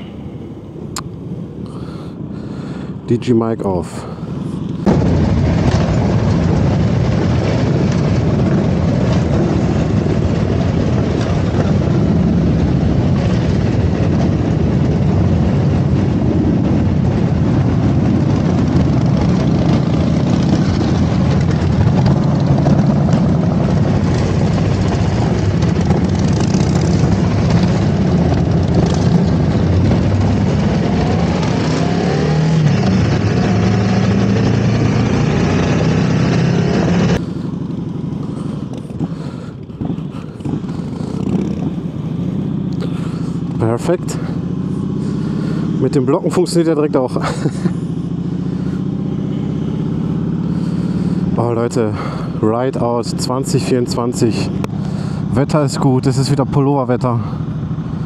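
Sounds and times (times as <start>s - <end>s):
road noise: 0.0s - 58.0s
motorcycle engine running: 4.1s - 58.0s.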